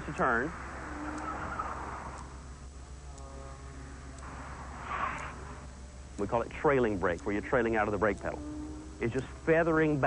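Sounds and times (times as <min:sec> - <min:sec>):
tires rushing on pavement: 0:00.0 - 0:02.2
faint tire squeal: 0:00.7 - 0:02.3, 0:04.4 - 0:05.6.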